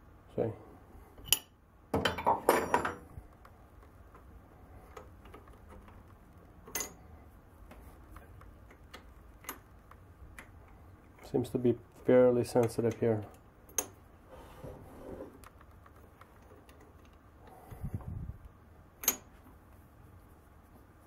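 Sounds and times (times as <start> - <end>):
wrench clattering metal on metal: 6.7 - 7.0
wrench clinking on metal: 6.7 - 7.0, 19.0 - 19.3.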